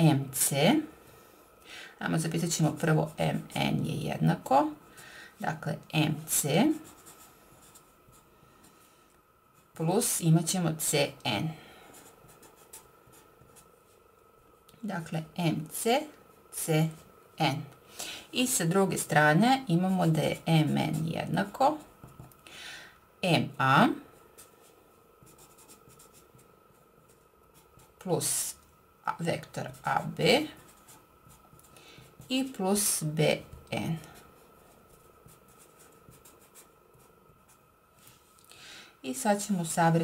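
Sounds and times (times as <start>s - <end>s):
marker scratching on paper: 24.4s - 37.6s.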